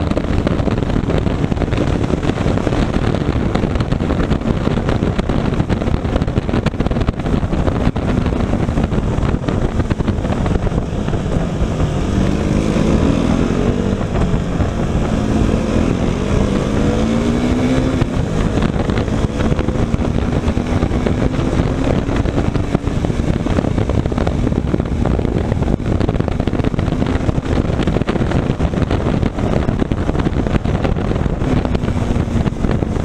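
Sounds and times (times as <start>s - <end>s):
motorcycle engine: 0.0s - 33.0s
wind rush on microphone: 0.0s - 33.0s.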